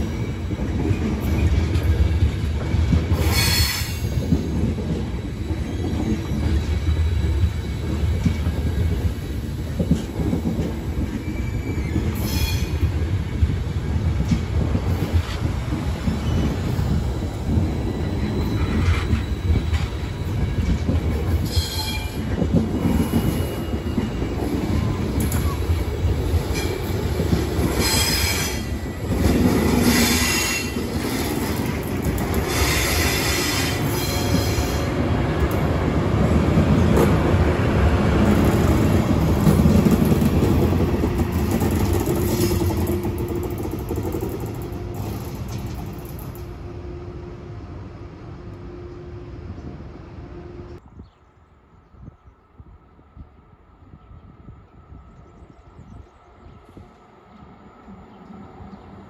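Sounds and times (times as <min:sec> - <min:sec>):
train wheels squealing: 0:00.0 - 0:13.2, 0:15.0 - 0:35.0
train coaches rumbling past: 0:00.0 - 0:50.9.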